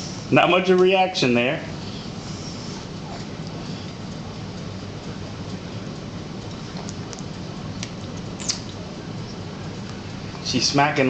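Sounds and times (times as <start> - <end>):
steady low hum: 0.0 - 11.0
baby smacking lips: 6.7 - 8.8.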